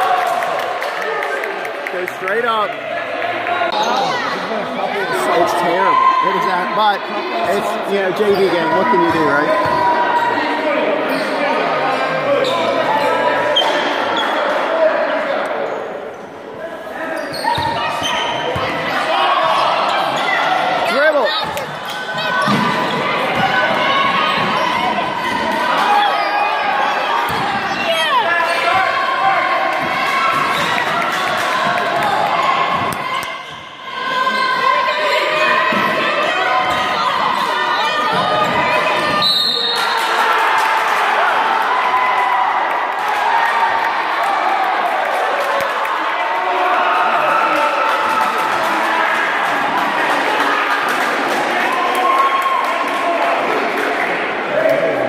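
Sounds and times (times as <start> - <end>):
voices echoing in gym: 0.0 - 55.0.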